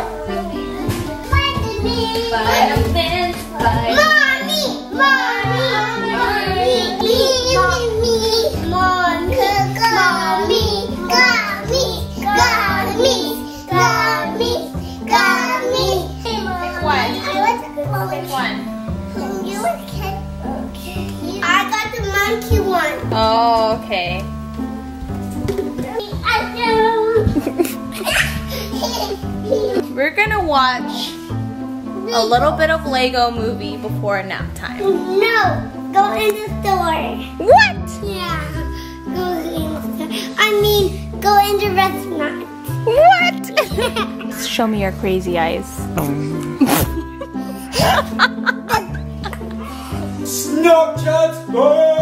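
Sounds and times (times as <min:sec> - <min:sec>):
toddlers giggling and laughing: 0:00.0 - 0:23.5, 0:25.5 - 0:30.1, 0:34.8 - 0:44.6, 0:45.9 - 0:50.4
background music with held low notes: 0:00.0 - 0:52.0.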